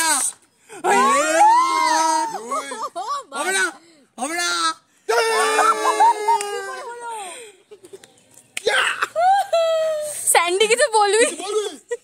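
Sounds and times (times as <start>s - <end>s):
man laughing: 2.3s - 3.6s.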